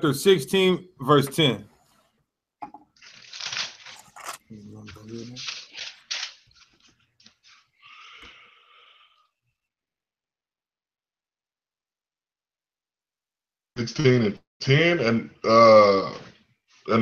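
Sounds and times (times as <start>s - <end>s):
paper pages flipping and rustling: 3.0s - 7.8s.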